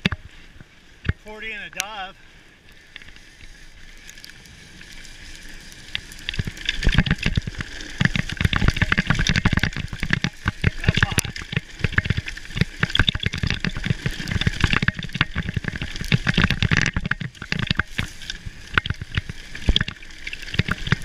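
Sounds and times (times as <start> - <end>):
tyres on loose dirt: 1.0 - 21.0
mountain bike rattling: 2.5 - 21.0.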